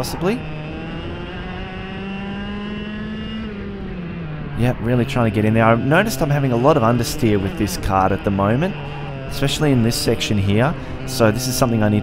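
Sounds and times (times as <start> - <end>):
kart engine revving high: 0.0 - 12.0.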